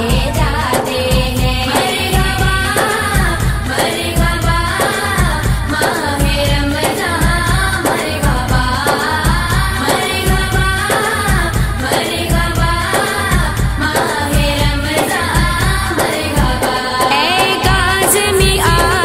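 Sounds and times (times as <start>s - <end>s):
low drum beat: 0.0s - 16.7s, 17.3s - 19.0s
person singing devotional song: 0.0s - 19.0s.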